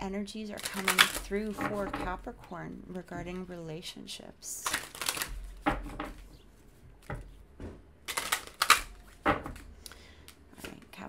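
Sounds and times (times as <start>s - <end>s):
cards being shuffled: 0.6s - 2.1s, 4.6s - 6.4s, 8.0s - 10.9s.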